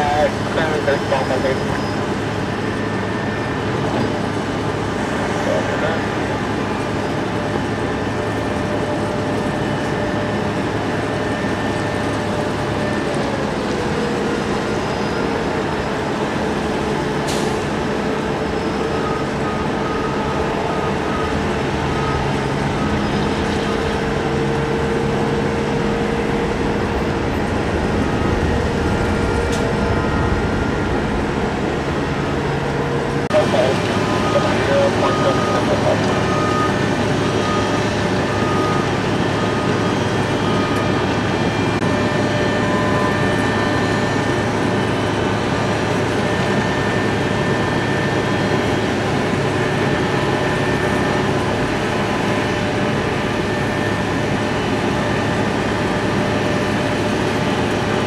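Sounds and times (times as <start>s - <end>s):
jet engine idling with whine: 0.0s - 58.0s.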